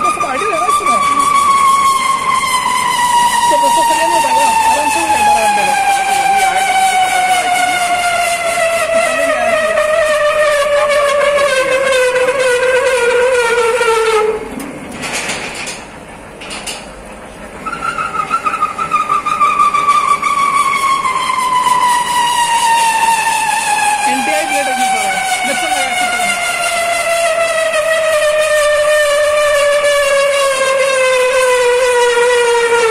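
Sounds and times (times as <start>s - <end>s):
threading machine squealing: 0.0s - 14.4s, 17.6s - 32.9s.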